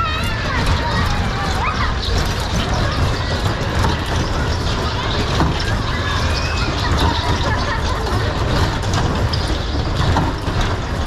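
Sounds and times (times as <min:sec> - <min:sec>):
children's voices: 0:00.0 - 0:11.0
spinning ride rumbling and hissing: 0:00.0 - 0:11.0.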